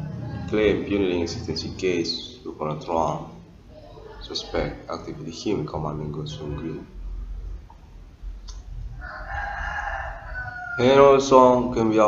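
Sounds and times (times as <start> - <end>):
rooster crowing: 8.9 - 11.3.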